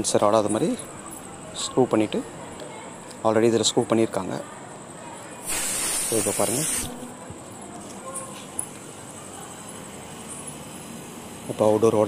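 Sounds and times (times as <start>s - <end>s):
gas hissing from hose fitting: 5.4s - 7.0s.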